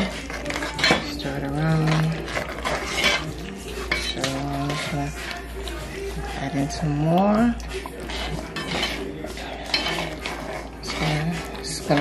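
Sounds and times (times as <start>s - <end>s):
spoon scraping pot: 0.0s - 12.0s.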